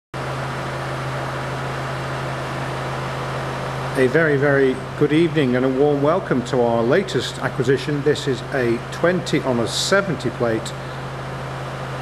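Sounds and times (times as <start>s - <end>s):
steady mechanical hum: 0.2s - 12.0s.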